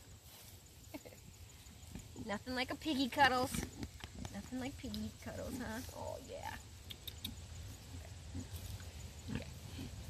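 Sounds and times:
pigs grunting: 0:07.2 - 0:10.0.

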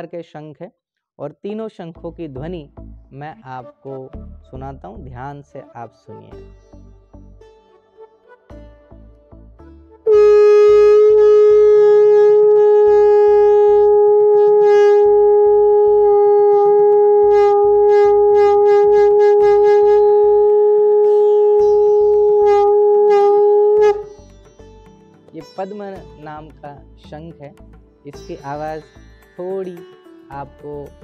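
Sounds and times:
conch shell blown: 0:10.0 - 0:24.3.

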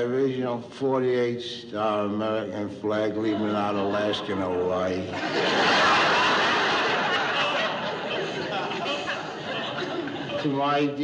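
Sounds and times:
audience laughter: 0:03.2 - 0:11.0.

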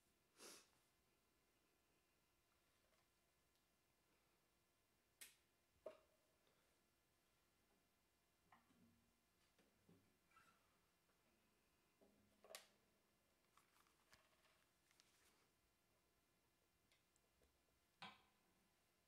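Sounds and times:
faint clicks of equipment handled: 0:13.5 - 0:15.5.

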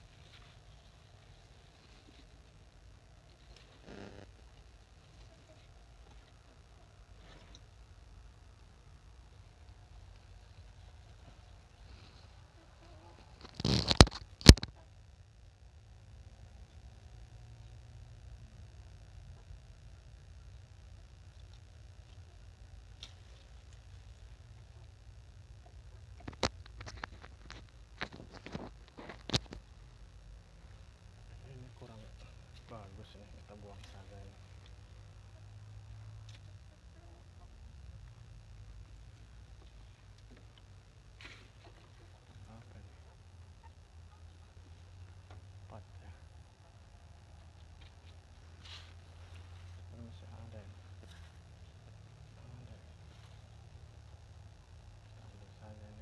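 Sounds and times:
faint low rumble: 0:00.0 - 0:56.0
vines clicking and snapping: 0:13.3 - 0:14.7.

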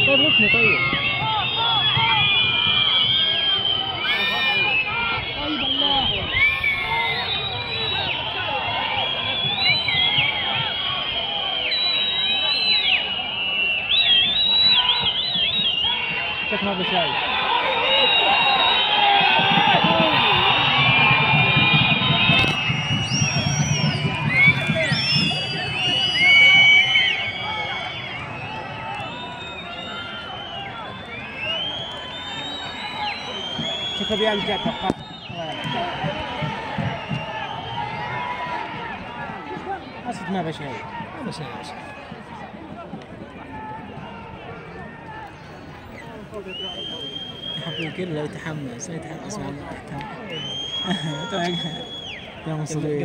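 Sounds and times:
stadium crowd shouting and chanting: 0:00.0 - 0:53.0.

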